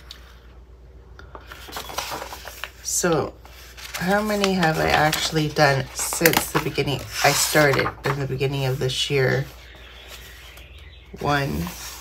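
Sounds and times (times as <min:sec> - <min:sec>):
paper pages rustling: 0:01.2 - 0:10.8.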